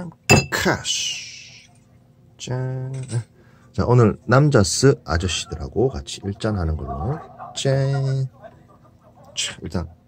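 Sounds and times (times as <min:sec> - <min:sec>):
drinking glasses clinking: 0:00.3 - 0:00.6.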